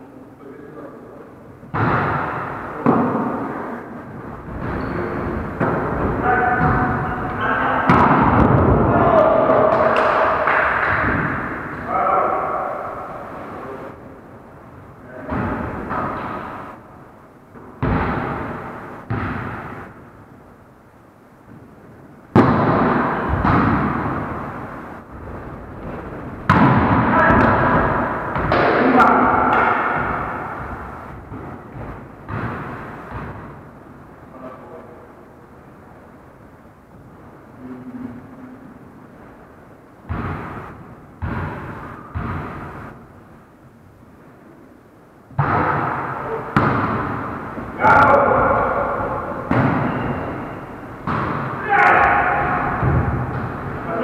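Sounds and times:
volleyball hits: 1.6s - 3.4s, 4.5s - 13.1s, 15.2s - 16.7s, 17.5s - 20.0s, 22.3s - 33.7s, 40.0s - 43.0s, 45.3s - 54.0s
players calling out: 4.6s - 14.0s, 26.5s - 31.1s, 45.4s - 54.0s.

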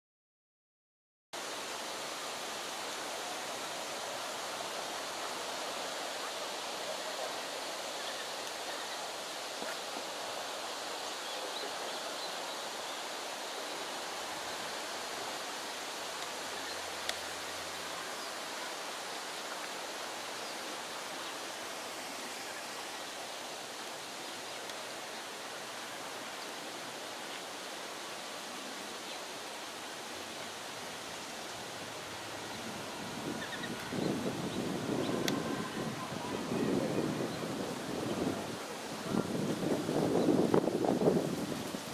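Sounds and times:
outdoor background hiss: 1.4s - 41.9s
faint click: 8.4s - 8.6s.

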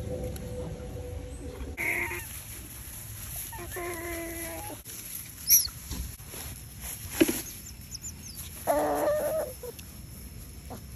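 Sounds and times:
cluck-like animal call: 1.8s - 2.3s.

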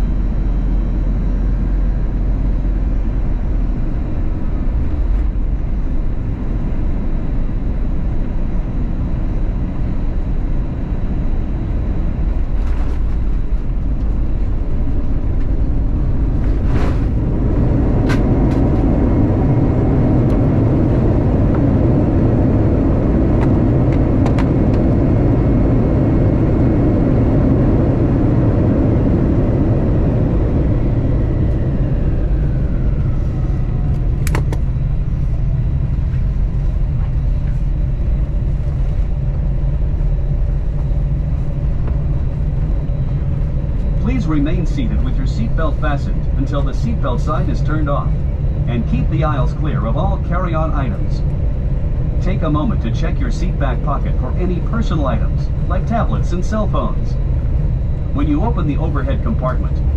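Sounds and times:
engine whine spooling down: 0.0s - 59.9s
jet engine cabin rumble: 0.0s - 59.9s.

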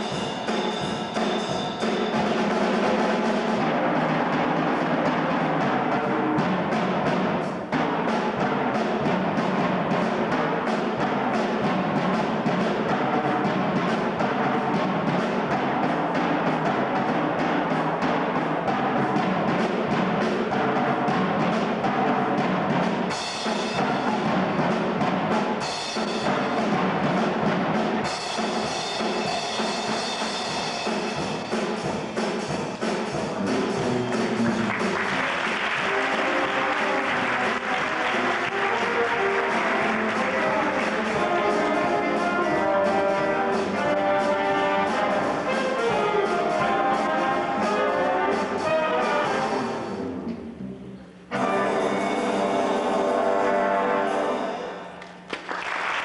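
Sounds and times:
jazz big band playing: 0.0s - 55.0s
drum kit: 0.0s - 55.9s.

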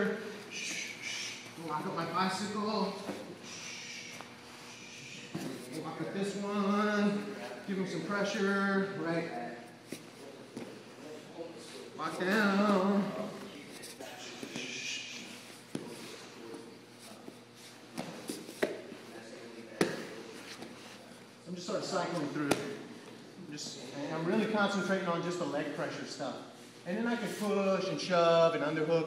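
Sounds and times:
bodies shifting on a mat: 15.6s - 19.0s.

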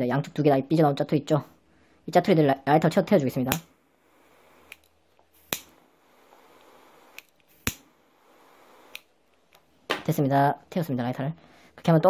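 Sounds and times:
faint lighter hiss: 3.4s - 9.7s
lighter clicks: 3.5s - 3.7s, 4.6s - 9.6s.

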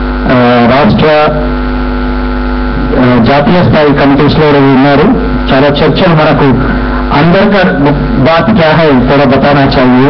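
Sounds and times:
steady low hum: 0.0s - 10.0s
person speaking: 2.8s - 10.0s.

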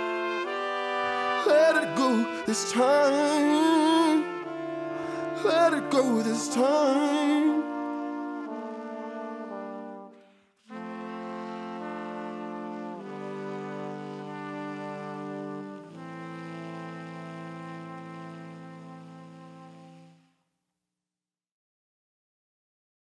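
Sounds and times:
band and horns holding chords: 0.0s - 20.1s.

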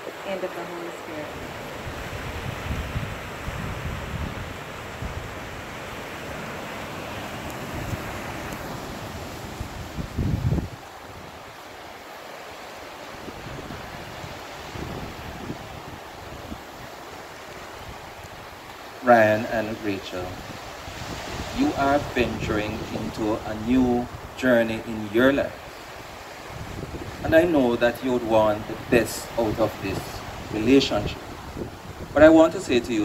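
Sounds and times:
sea surf: 0.0s - 33.0s
wind buffeting microphone: 1.1s - 11.9s, 13.0s - 33.0s.

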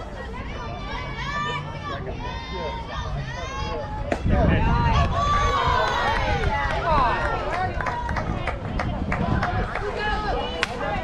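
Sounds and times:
crowd cheering and shouting: 0.0s - 11.0s
people clapping and calling: 5.0s - 11.0s.

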